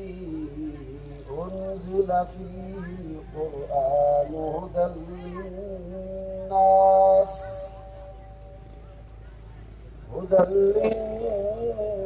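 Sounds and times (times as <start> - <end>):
man chanting melodic recitation: 0.0 - 8.6, 10.1 - 12.0.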